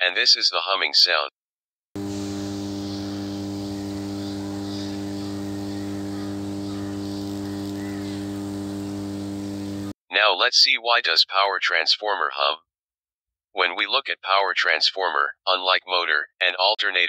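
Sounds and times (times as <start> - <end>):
power transformer humming: 2.0 - 9.9.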